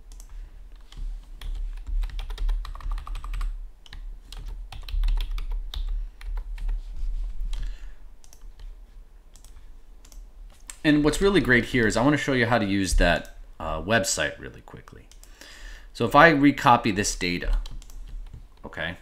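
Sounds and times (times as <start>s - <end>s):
steady low hum: 0.0s - 19.0s
typing on computer keyboard: 0.1s - 6.8s.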